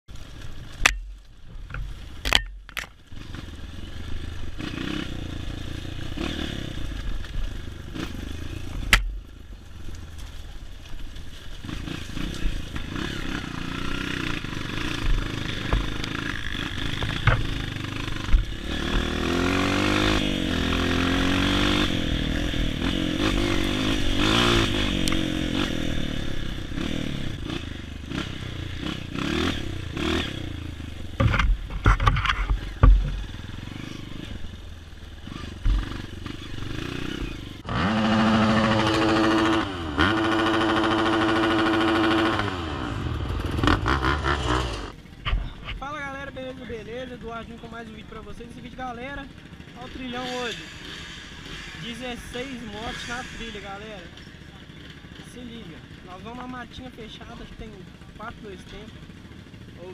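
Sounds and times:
dirt bike engine revving: 3.0 - 10.4, 11.4 - 59.9
sharp knocks: 31.2 - 33.2.

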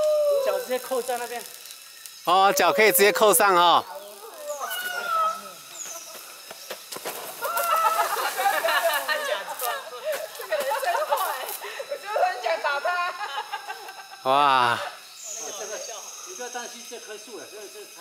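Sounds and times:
people chattering and calling out: 2.2 - 6.5, 7.4 - 18.0.

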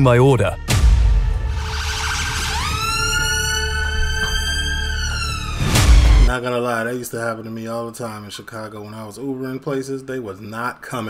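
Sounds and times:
ambulance siren wailing: 1.5 - 6.3.

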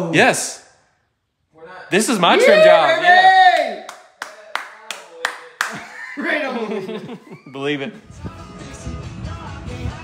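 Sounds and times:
person clapping hands: 3.6 - 5.9.

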